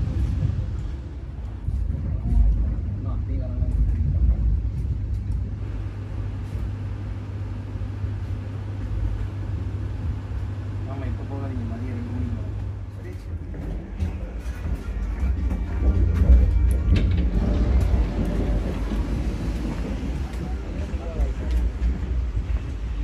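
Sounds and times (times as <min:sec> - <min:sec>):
train interior rumble and hum: 0:00.0 - 0:23.0.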